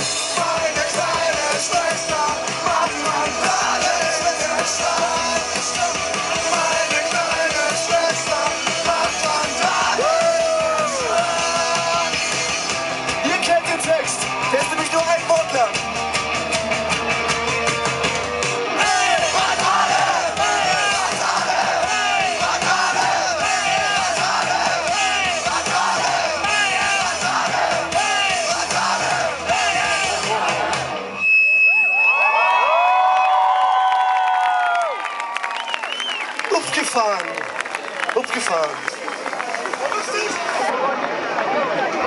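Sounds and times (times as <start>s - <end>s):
rock band playing live: 0.0s - 31.2s
crowd yelling and singing along: 0.0s - 37.1s
crowd cheering and whooping: 0.8s - 12.5s, 13.9s - 15.6s, 16.3s - 42.0s.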